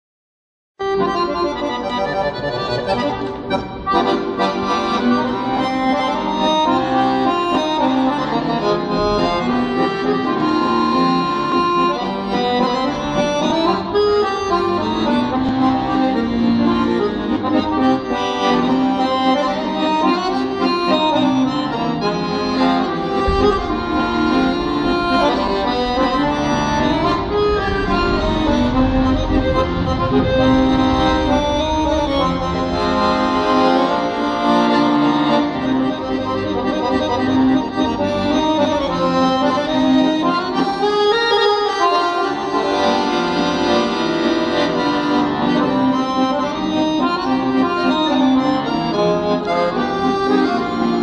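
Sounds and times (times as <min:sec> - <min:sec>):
accordions playing a tune: 0:00.8 - 0:51.0.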